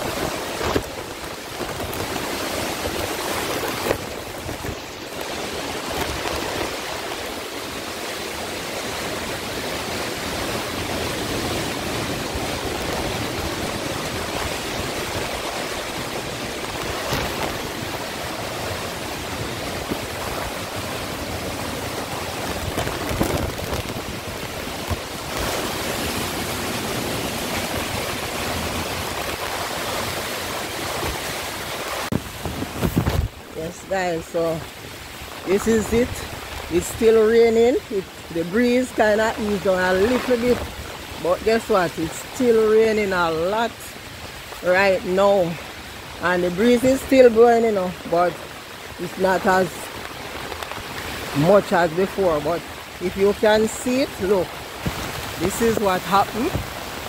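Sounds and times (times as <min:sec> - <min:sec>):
heavy rain pouring: 0:00.0 - 0:57.0
wind blowing: 0:00.0 - 0:57.0.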